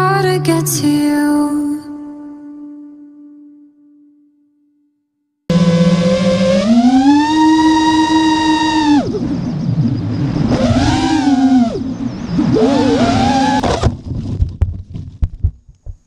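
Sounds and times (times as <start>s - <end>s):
quadcopter motors whining: 5.5s - 13.8s.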